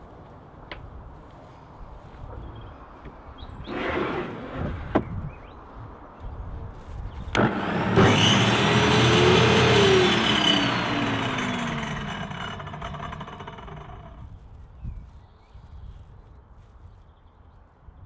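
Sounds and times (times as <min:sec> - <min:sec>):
saw motor running: 0:07.4 - 0:14.3.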